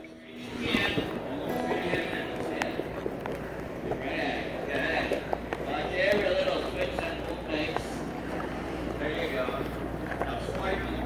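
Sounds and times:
muffled voices: 0:00.0 - 0:11.0.

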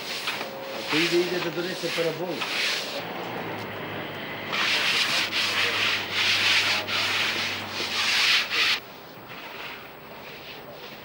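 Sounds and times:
float scraping plaster wall: 0:04.3 - 0:08.8.

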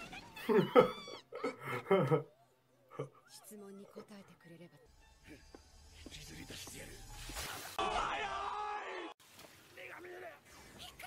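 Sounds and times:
man laughing: 0:00.5 - 0:02.3.

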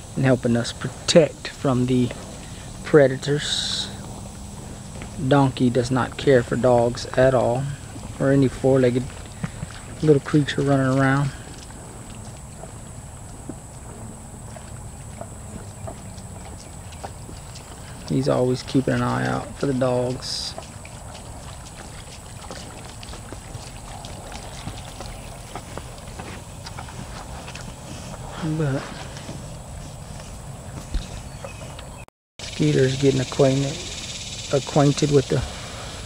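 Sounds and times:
cattle crunching feed: 0:00.0 - 0:32.0
hooves clopping on concrete: 0:00.0 - 0:32.0
steady low rumble: 0:00.0 - 0:32.0
hoof scuffs and clicks: 0:00.0 - 0:35.3.

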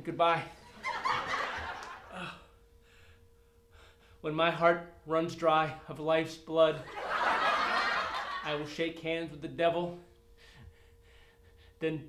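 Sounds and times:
thin steady hum: 0:00.0 - 0:12.0
faint gasping breaths: 0:10.4 - 0:11.8.

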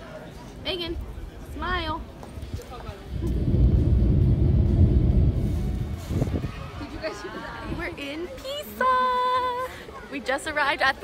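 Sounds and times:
car road and wind noise: 0:01.7 - 0:08.0.

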